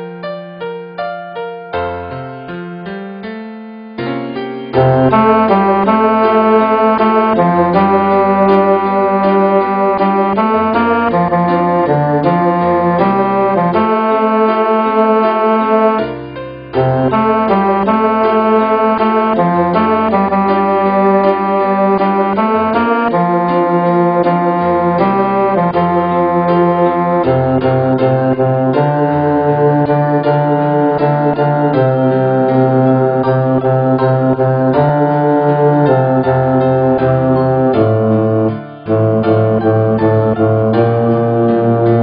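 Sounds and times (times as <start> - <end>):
piano repeated chords: 0.0 - 42.0
bass line: 4.8 - 16.0, 16.8 - 42.0.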